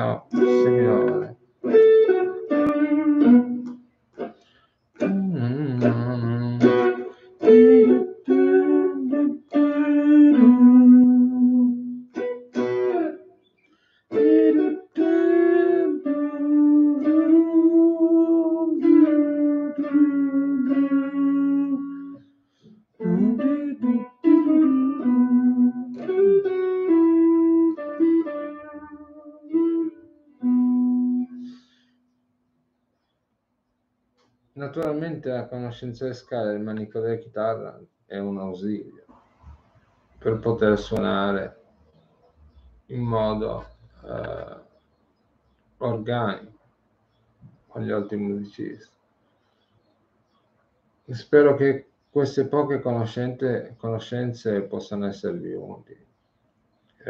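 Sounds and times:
electric guitar lead line: 0:00.0 - 0:13.2, 0:14.1 - 0:22.2, 0:23.0 - 0:31.7.

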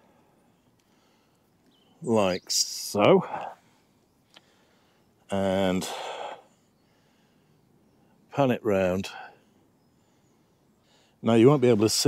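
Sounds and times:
breathy exhale: 0:05.8 - 0:07.5.

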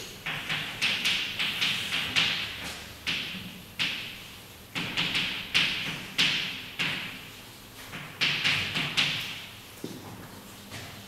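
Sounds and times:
chalk tapping on blackboard: 0:00.2 - 0:04.2, 0:07.9 - 0:09.4.

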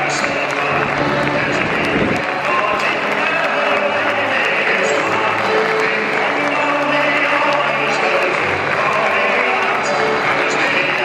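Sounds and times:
music playing: 0:00.0 - 0:11.0
stadium crowd applauding: 0:00.0 - 0:11.0.

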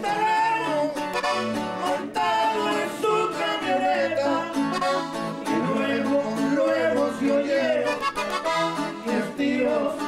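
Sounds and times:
accordion: 0:00.0 - 0:10.0
guitar: 0:00.0 - 0:10.0
two men singing in duet: 0:00.0 - 0:10.0.

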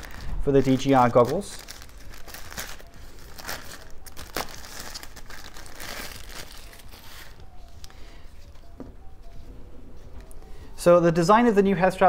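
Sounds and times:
packaging bag tearing and crinkling: 0:00.0 - 0:07.4.

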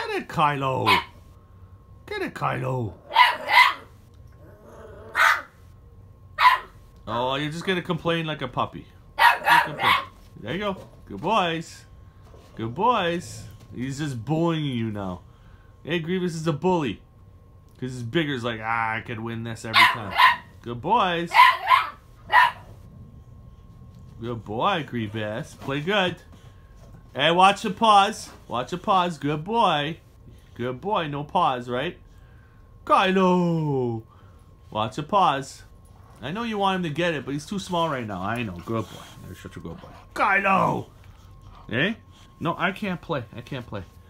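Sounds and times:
puppy barking: 0:00.8 - 0:01.2, 0:03.0 - 0:04.0, 0:05.1 - 0:05.6, 0:06.4 - 0:06.8, 0:09.2 - 0:10.2, 0:19.7 - 0:20.6, 0:21.2 - 0:22.8.

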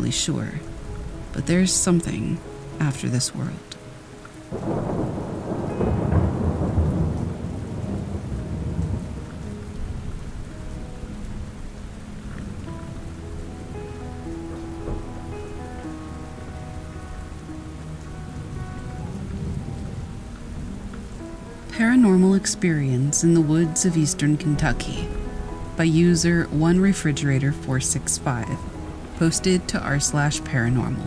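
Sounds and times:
steady rain: 0:00.0 - 0:31.0
rolling thunder: 0:04.5 - 0:22.0, 0:24.4 - 0:31.0.

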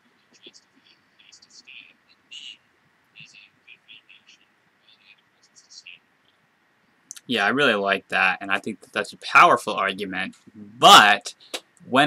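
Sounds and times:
whispery voice fragments: 0:00.2 - 0:06.0.

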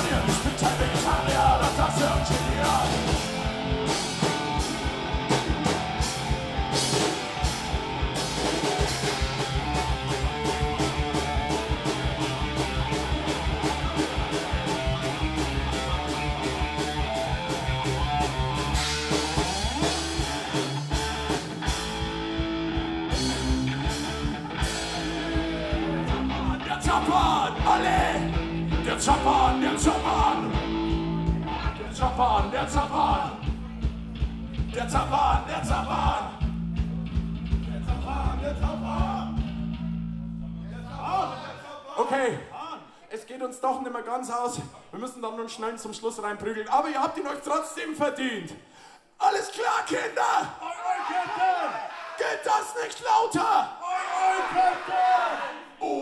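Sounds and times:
electric guitar: 0:00.0 - 0:36.1
drums fast beat: 0:00.0 - 0:40.2
bass guitar: 0:00.0 - 0:41.5.

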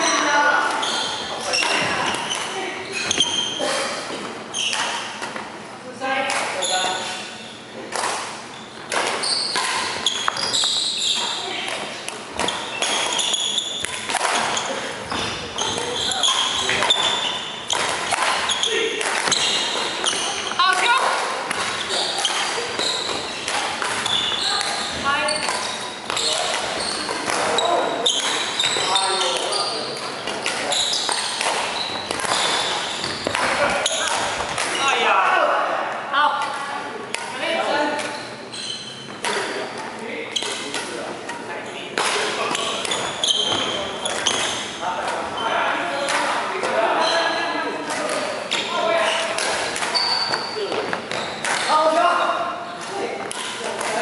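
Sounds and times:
people talking: 0:00.0 - 0:04.1, 0:11.2 - 0:12.5, 0:14.1 - 0:38.3, 0:39.2 - 0:51.0, 0:51.6 - 0:54.0
racket striking shuttlecock: 0:07.9 - 0:14.7, 0:15.6 - 0:24.8, 0:25.4 - 0:27.6, 0:29.3 - 0:34.8, 0:42.0 - 0:45.2, 0:49.3 - 0:50.4, 0:51.0 - 0:51.7.

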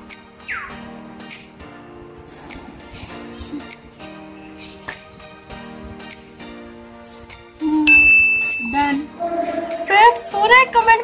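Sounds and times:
soft background guitar music: 0:00.0 - 0:11.0
high chime sound effect: 0:07.9 - 0:09.0.

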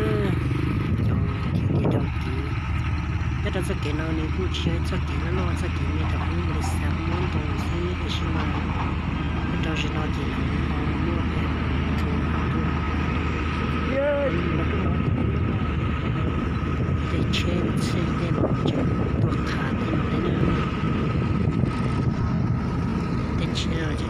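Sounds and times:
engine humming steadily: 0:00.0 - 0:24.0.

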